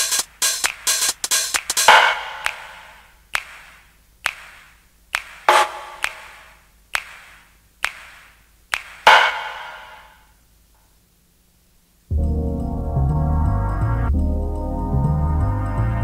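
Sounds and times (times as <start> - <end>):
echoing electronic percussion hits: 0.0 - 3.1, 5.4 - 7.3, 8.8 - 10.2
synth chord: 12.1 - 16.0.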